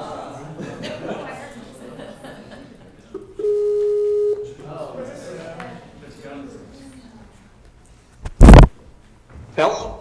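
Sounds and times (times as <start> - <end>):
murmur of voices: 0.0 - 3.4, 4.4 - 7.6
call ringing tone: 3.4 - 4.4.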